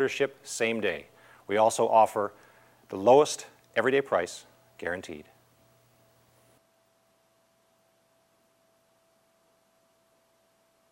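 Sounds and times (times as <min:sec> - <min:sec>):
faint steady tone: 0:04.4 - 0:10.9.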